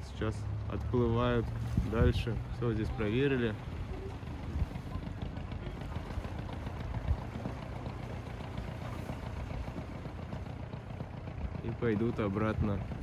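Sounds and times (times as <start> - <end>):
boat motor running at low speed: 0.0 - 13.0.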